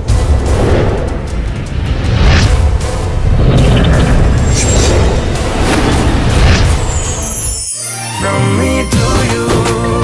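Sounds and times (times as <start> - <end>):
booming bass music: 0.0 - 7.2.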